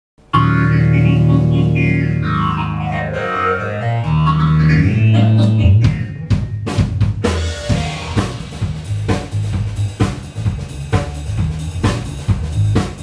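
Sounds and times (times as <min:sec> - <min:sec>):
sustained low bass notes: 0:00.3 - 0:12.8
bending high notes: 0:00.4 - 0:09.3
live band playing: 0:00.4 - 0:13.0.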